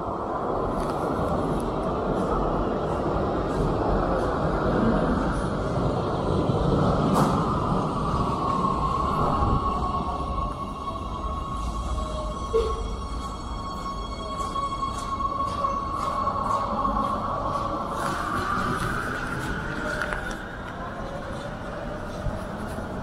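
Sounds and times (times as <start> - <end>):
metro train rumble: 0.0 - 23.0.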